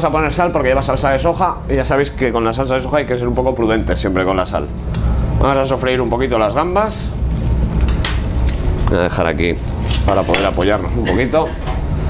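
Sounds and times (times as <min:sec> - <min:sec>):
prawns sizzling in frying pan: 0:06.5 - 0:11.1.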